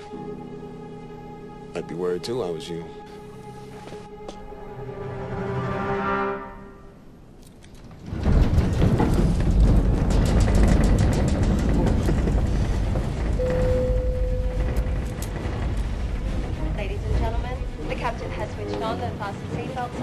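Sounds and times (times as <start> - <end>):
airliner cabin rumbling and rattling: 7.6 - 20.0
short steady tone: 13.4 - 14.9.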